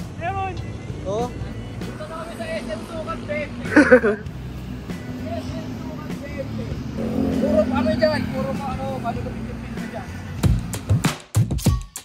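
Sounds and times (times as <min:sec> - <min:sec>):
motorcycles and cars passing: 0:00.0 - 0:11.1.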